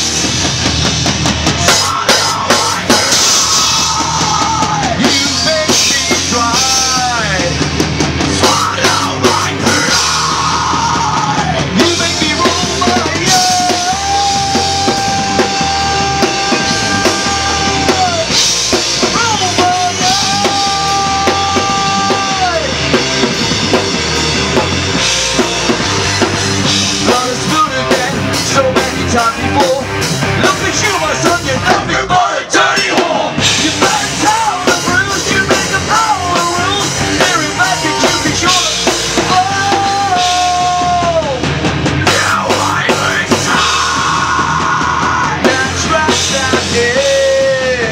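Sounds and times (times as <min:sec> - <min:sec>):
heavy rock band playing live: 0:00.0 - 0:47.9.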